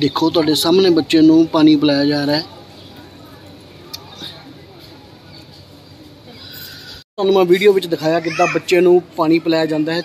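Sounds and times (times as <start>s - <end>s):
faint chatter of people: 0.0s - 10.0s.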